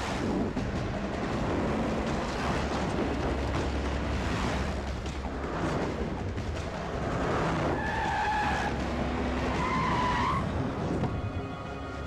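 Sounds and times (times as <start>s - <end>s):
vehicle engine and tyre noise: 0.0s - 12.0s.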